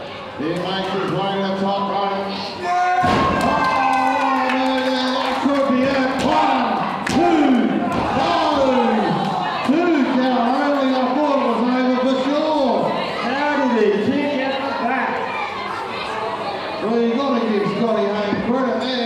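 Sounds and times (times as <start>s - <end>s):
people shouting: 2.6s - 12.0s.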